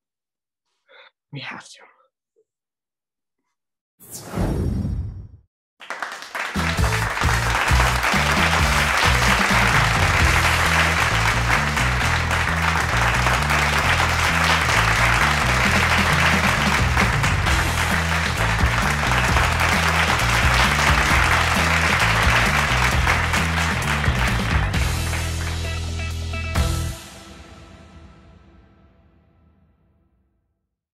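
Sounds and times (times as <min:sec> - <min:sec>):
applause: 0:05.8 - 0:26.7
music with stepping bass line: 0:06.6 - 0:27.0.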